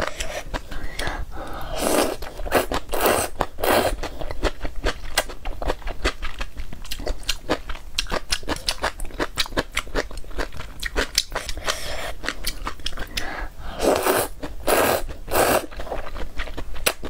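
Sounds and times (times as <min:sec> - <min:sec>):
noodle slurping: 0:01.7 - 0:04.1, 0:13.8 - 0:15.9
wet chewing: 0:02.0 - 0:17.0.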